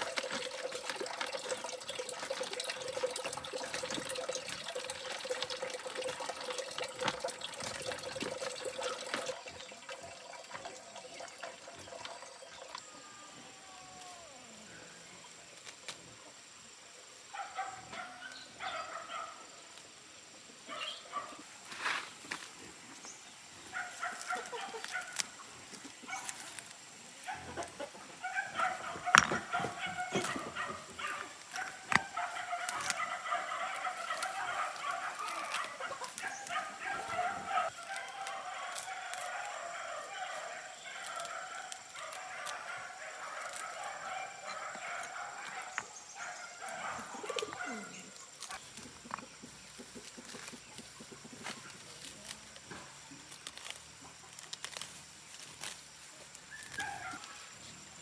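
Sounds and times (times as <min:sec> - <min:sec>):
grass being pulled up: 0:00.0 - 0:09.7, 0:20.7 - 0:58.0
chickens clucking: 0:27.3 - 0:38.7, 0:46.7 - 0:51.8.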